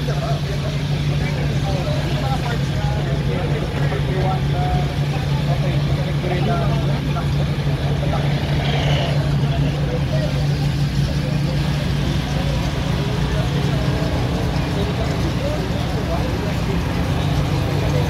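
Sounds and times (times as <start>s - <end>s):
car engine idling: 0.0s - 18.0s
people talking: 0.0s - 18.0s.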